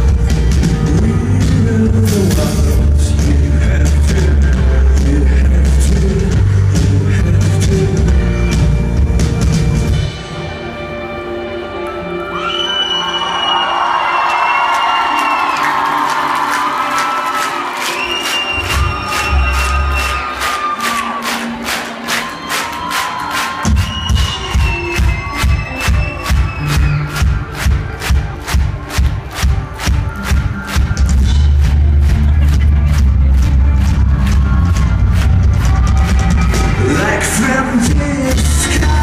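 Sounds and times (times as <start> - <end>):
bass: 0.0 - 11.5, 18.1 - 20.5, 23.7 - 39.0
rock band playing live: 0.0 - 12.4, 17.5 - 39.0
crowd cheering: 11.6 - 39.0.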